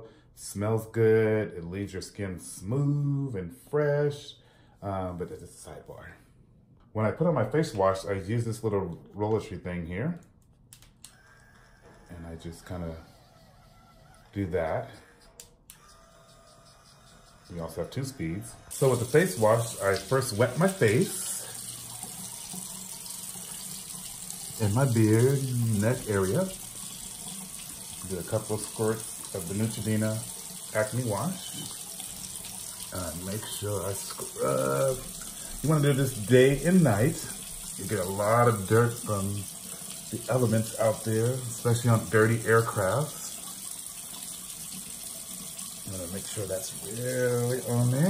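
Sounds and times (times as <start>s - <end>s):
tap running into basin: 18.7s - 48.0s.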